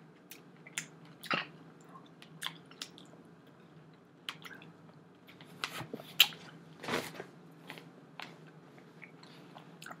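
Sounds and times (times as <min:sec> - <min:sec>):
faint steady hum: 0:00.0 - 0:10.0
person chewing: 0:00.2 - 0:05.4.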